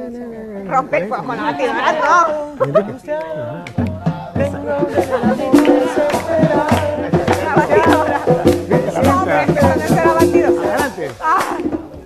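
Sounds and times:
voices singing: 0:00.0 - 0:12.0
live band playing dance music: 0:03.4 - 0:12.0
percussion strokes: 0:03.5 - 0:12.0.

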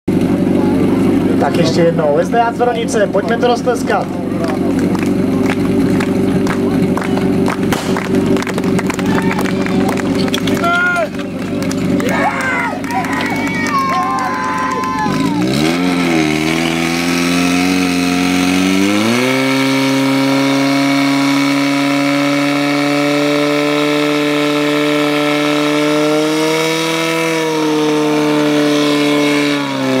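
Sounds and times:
fire pump engine revving: 0:00.1 - 0:30.0.

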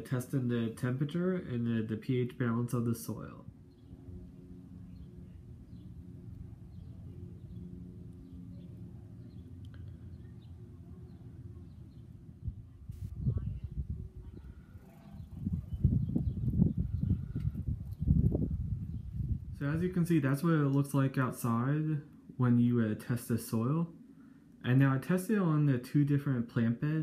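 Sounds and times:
steady low hum: 0:00.0 - 0:27.0
wind buffeting microphone: 0:11.7 - 0:20.3.

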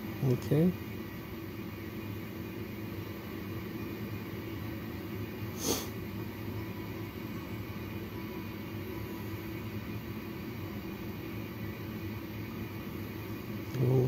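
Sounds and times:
medical equipment hum and hiss: 0:00.0 - 0:14.0.

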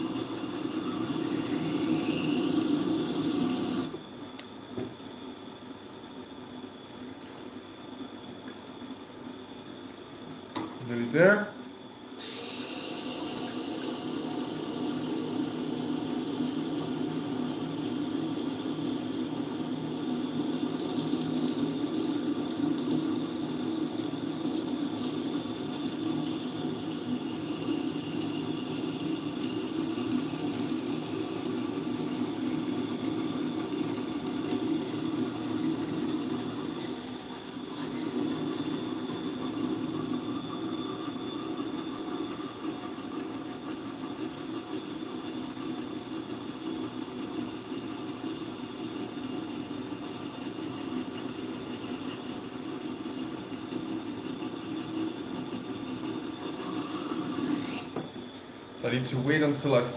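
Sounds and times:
sharpening machine motor hum: 0:00.0 - 0:04.0, 0:12.2 - 0:45.1, 0:54.0 - 0:58.0.

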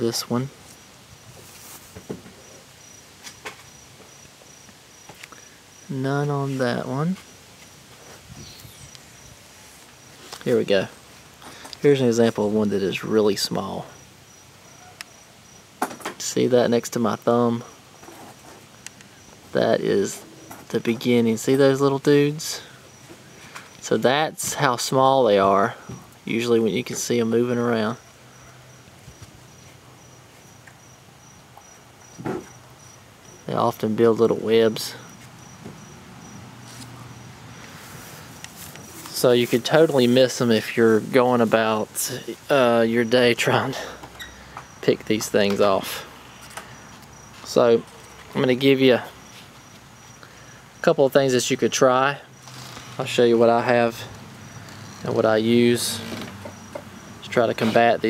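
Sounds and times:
faint rustles and clicks: 0:00.6 - 0:04.2, 0:18.0 - 0:20.8, 0:36.6 - 0:42.5
cricket chirping: 0:02.4 - 0:06.0, 0:07.2 - 0:09.4, 0:13.9 - 0:15.8, 0:22.1 - 0:23.9, 0:27.9 - 0:33.7, 0:34.6 - 0:39.3, 0:42.9 - 0:50.9, 0:51.7 - 0:57.4.

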